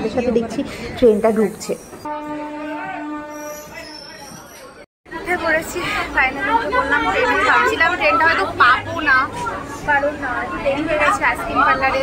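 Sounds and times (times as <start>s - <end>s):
people chattering: 0.0s - 2.0s, 2.6s - 12.0s
woman talking: 5.1s - 12.0s.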